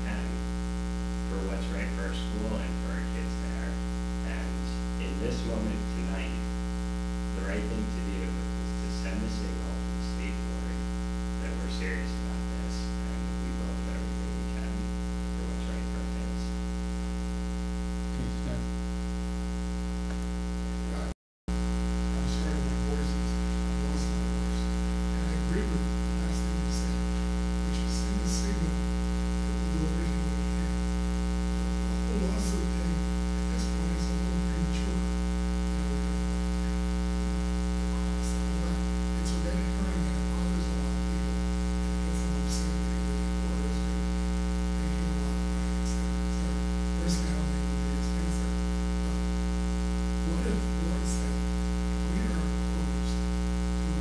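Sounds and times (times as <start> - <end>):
electrical mains hum: 0.0 - 54.0.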